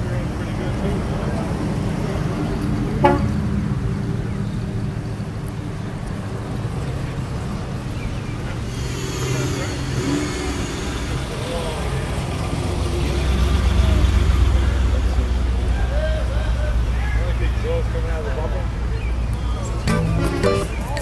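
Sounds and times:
cars driving slowly past: 0.0s - 21.0s.

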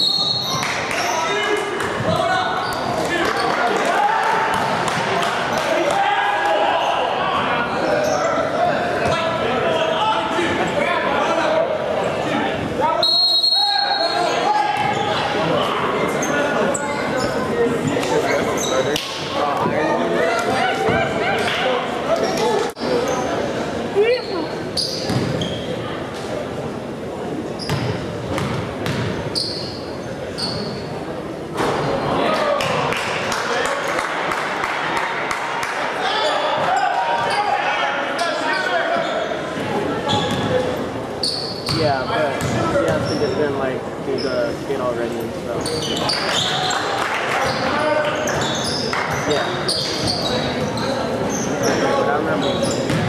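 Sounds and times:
sneakers squeaking on floor: 0.0s - 3.6s, 7.6s - 9.2s, 13.0s - 15.3s, 16.1s - 19.0s, 22.1s - 23.4s, 24.0s - 25.8s, 27.6s - 30.9s, 36.2s - 39.4s, 40.0s - 43.6s, 45.6s - 53.0s
crowd chatter echoing: 0.0s - 53.0s
basketball bouncing: 27.7s - 29.1s.

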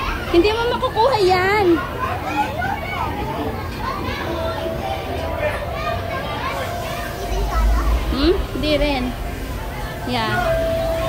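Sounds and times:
murmur of children's voices: 0.0s - 11.0s
faint steady tone: 4.3s - 11.0s.

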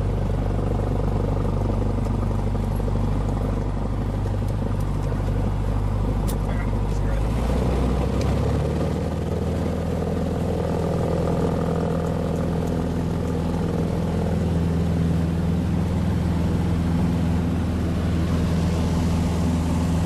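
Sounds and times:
light aircraft engine and propeller: 0.0s - 20.0s.

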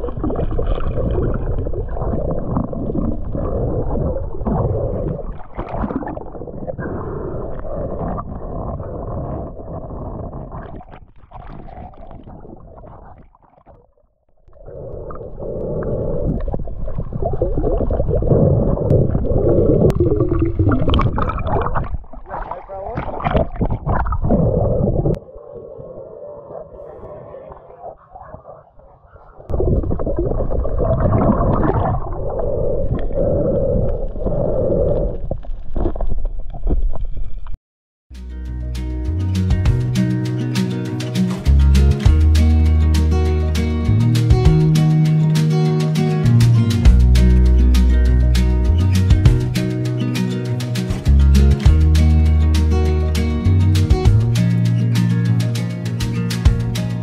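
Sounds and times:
muffled underwater bubbling: 0.0s - 37.1s.

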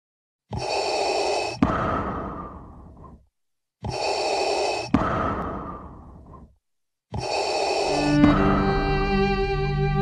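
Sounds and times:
mechanical respirator breathing: 0.5s - 9.0s.

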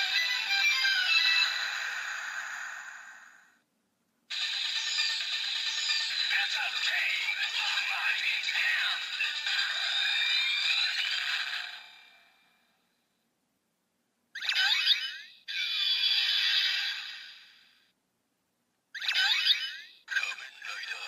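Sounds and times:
electronic music from toy: 0.0s - 2.4s, 4.3s - 12.0s
toy electronic jingle: 4.3s - 11.6s.

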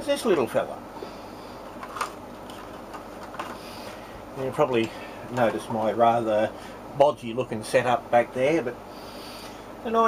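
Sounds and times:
room noise: 0.0s - 10.0s.

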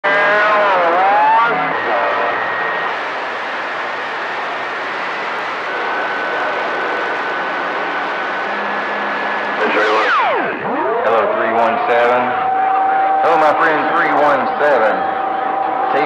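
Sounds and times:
radio static hiss: 0.1s - 12.5s
warbling radio tone: 0.1s - 15.3s.

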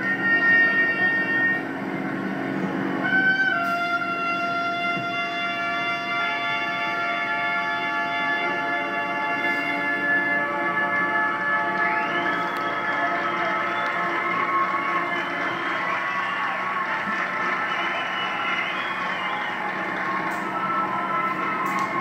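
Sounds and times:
marching band brass chords: 0.0s - 22.0s.

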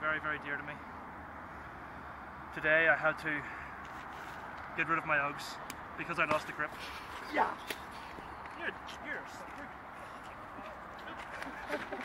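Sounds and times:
men laughing: 10.5s - 12.0s.

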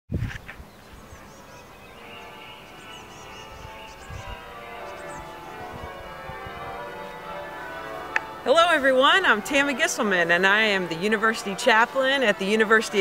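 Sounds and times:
bird chirps: 0.6s - 5.6s
bells ringing: 1.7s - 13.0s.

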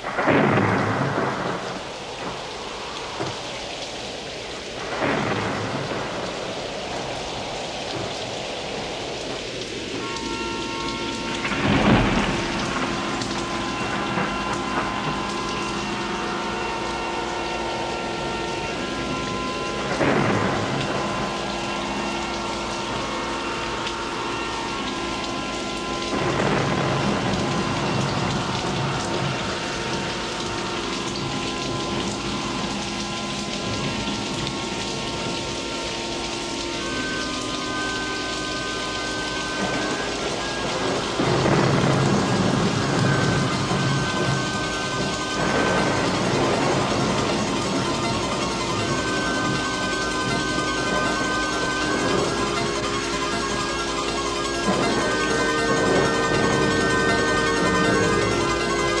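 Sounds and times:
rolling thunderclaps: 0.0s - 35.5s, 37.8s - 59.0s
steady rain: 0.0s - 59.0s.

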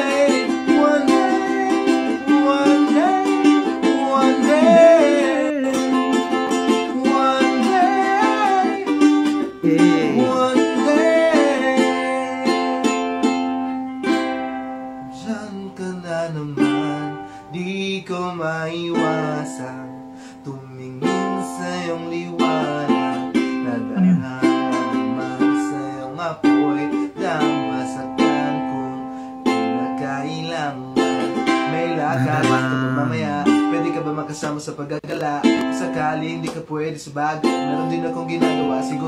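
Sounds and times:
man singing: 0.0s - 13.0s, 15.1s - 39.0s
ukulele strumming: 0.0s - 39.0s.

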